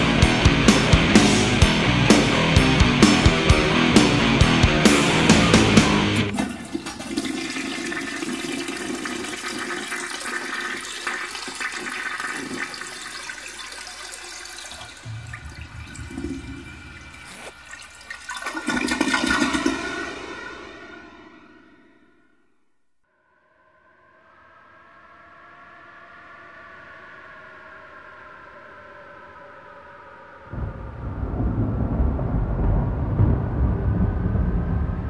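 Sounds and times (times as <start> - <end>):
thrash metal band: 0.0 - 6.4
rushing noise with ringing tones: 15.0 - 18.4.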